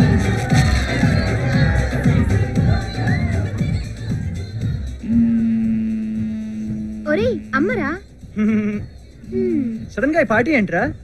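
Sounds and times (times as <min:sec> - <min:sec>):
held low musical note: 0:05.0 - 0:07.6.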